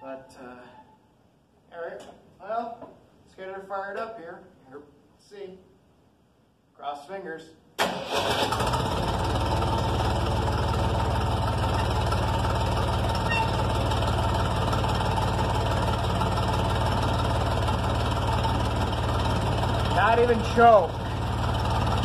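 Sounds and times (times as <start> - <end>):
tractor engine idling: 7.9 - 22.0.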